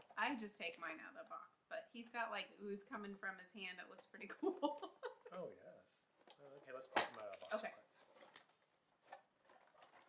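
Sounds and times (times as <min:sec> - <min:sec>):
faint clicks and taps of packaging: 0:06.2 - 0:10.0.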